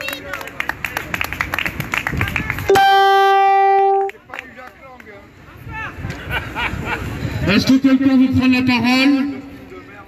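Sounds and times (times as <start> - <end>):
outdoor crowd noise: 0.0 - 10.0
loud horn blast: 2.7 - 4.2.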